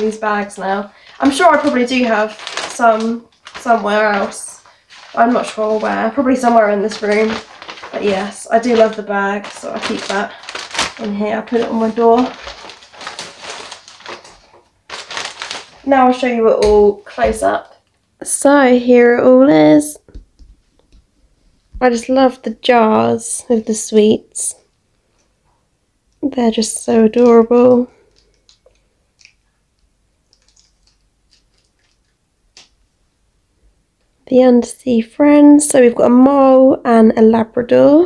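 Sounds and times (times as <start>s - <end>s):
plastic bag rustling and crinkling: 0.0s - 17.7s, 30.2s - 32.8s
small clicks of jars handled: 28.1s - 32.7s.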